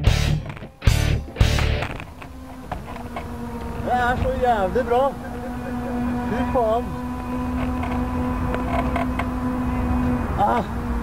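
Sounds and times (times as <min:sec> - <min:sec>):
steady low hum: 0:00.0 - 0:11.0
glider frame clicking and creaking: 0:07.0 - 0:09.6.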